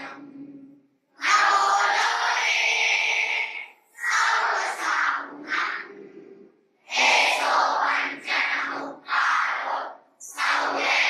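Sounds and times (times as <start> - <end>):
girls singing over loudspeakers: 0.0 - 0.6, 1.2 - 11.0.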